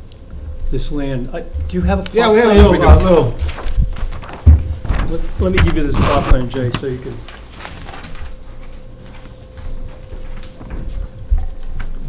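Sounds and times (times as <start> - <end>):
low thumps: 0.0 - 6.5
faint steady hum: 0.0 - 12.0.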